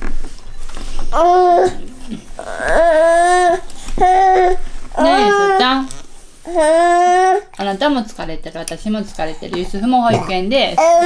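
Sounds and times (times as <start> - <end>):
toddler whining: 1.1 - 7.6, 10.8 - 11.0.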